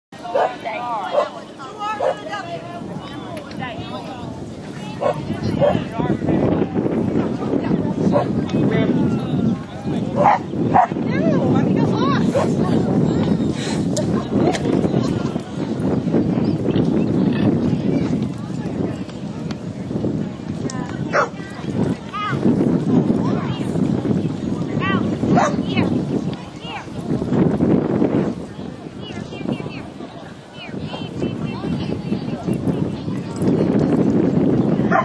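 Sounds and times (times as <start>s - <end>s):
murmur of voices: 0.1s - 35.0s
people talking: 0.2s - 35.0s
dog barking: 0.3s - 1.3s, 5.0s - 5.8s, 10.2s - 11.0s, 21.1s - 21.4s, 25.3s - 25.6s.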